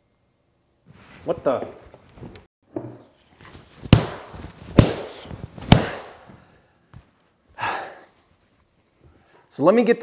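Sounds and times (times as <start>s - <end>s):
wooden bat whacks: 3.8s - 6.4s.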